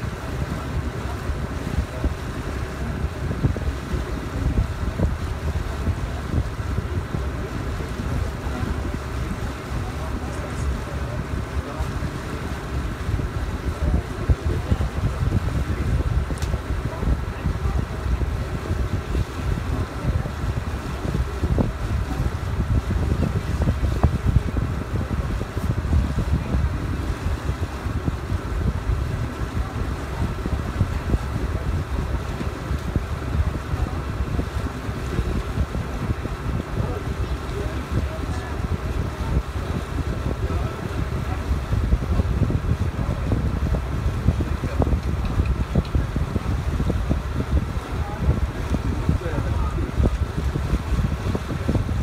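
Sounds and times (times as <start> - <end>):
boat motor hum: 0.0 - 52.0
wind buffeting microphone: 0.0 - 52.0.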